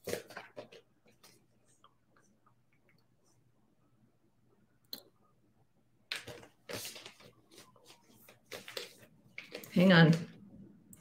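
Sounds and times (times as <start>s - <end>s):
cards shuffling: 6.1s - 10.2s.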